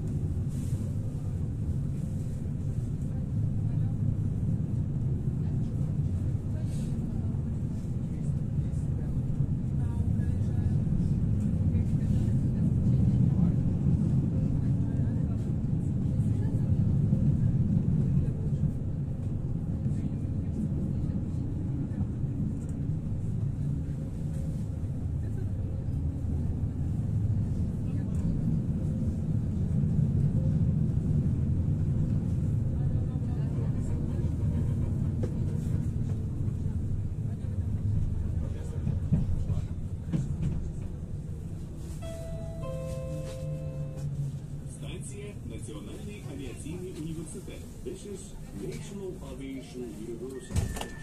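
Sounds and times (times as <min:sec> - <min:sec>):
tram wheels rumbling on rails: 0:00.0 - 0:51.0.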